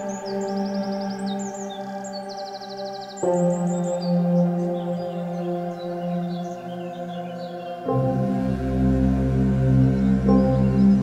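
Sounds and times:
ambient meditation music: 0:00.0 - 0:11.0
birds chirping: 0:00.0 - 0:11.0.

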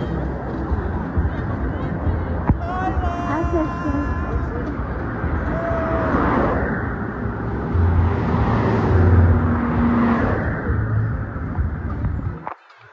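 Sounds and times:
cars driving past: 0:00.0 - 0:12.5.

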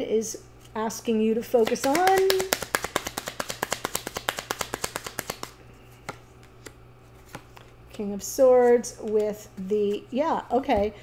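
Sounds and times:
cards being shuffled: 0:01.5 - 0:08.1.

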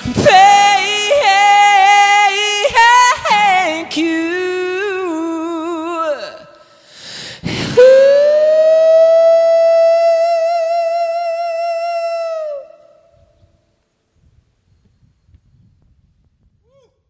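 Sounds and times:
man singing a long note: 0:07.8 - 0:13.0.

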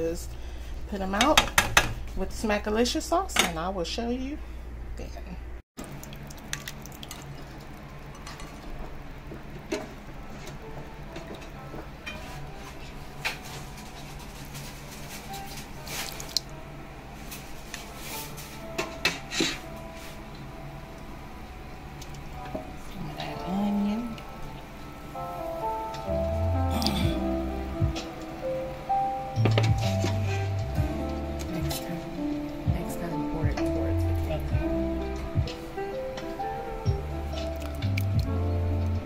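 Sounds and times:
steady low hum: 0:19.6 - 0:39.0.

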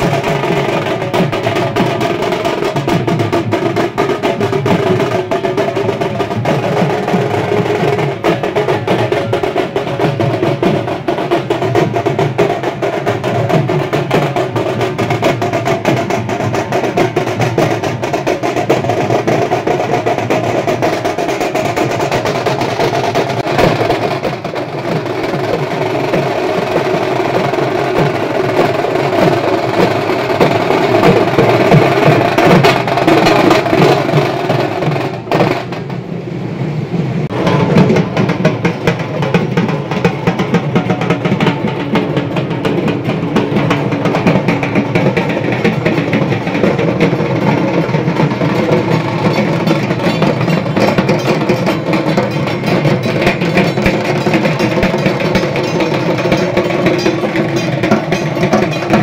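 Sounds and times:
drums beaten in rolling rhythm: 0:00.0 - 0:59.0.

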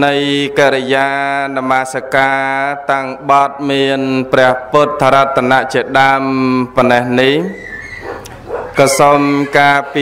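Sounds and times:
man chanting: 0:00.0 - 0:07.6, 0:08.7 - 0:10.0.

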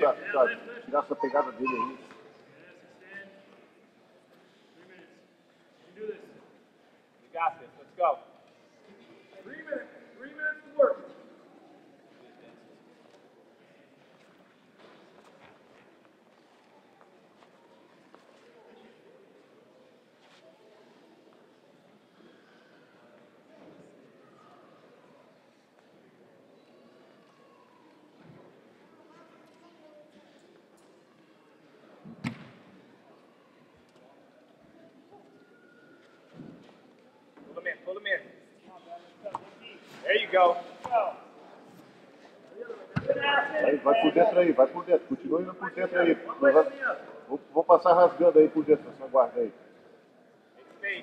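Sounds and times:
faint hall noise: 0:00.0 - 0:51.0.

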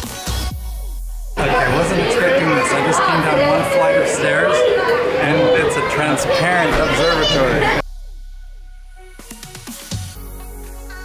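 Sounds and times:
people talking and chattering: 0:01.4 - 0:07.8.

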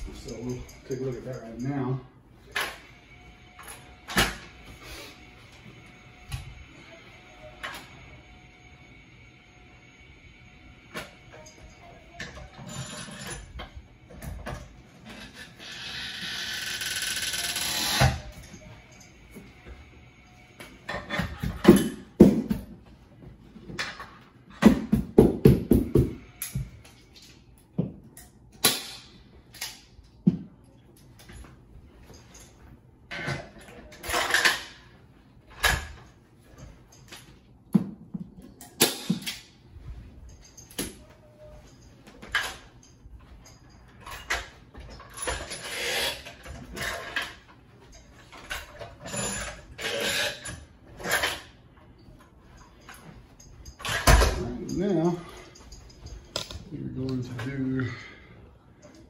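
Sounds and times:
tools knocking and scraping: 0:20.8 - 0:22.8, 0:35.5 - 0:56.6.

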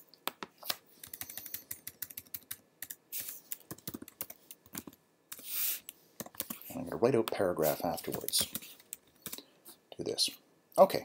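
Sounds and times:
keyboard typing: 0:00.6 - 0:05.5, 0:08.0 - 0:09.4.

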